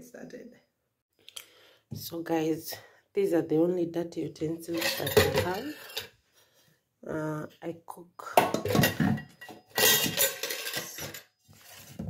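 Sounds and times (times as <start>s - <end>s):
steel dishes clattering in sink: 4.6s - 6.1s, 8.4s - 12.0s.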